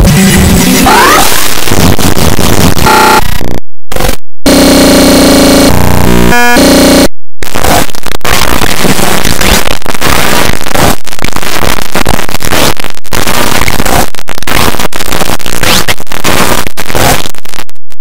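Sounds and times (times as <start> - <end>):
garbled cartoon music: 0.0 - 3.2
harsh distorted noise: 0.0 - 18.0.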